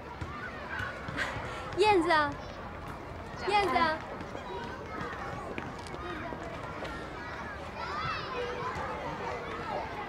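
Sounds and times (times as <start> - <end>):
murmur of voices outdoors: 0.0 - 10.0.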